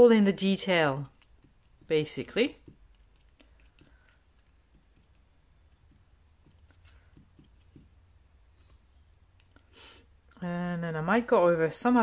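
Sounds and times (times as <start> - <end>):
marker tip dabbing on paper: 0.7 - 9.3.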